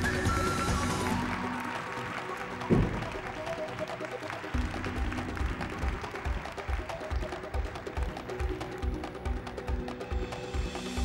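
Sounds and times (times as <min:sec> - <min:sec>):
stage show music: 0:00.0 - 0:11.0.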